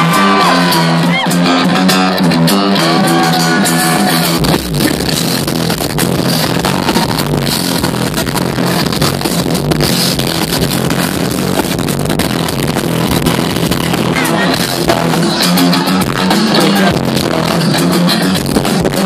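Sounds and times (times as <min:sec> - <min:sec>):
deep bass: 0:00.0 - 0:19.0
loud live concert music: 0:00.0 - 0:19.0.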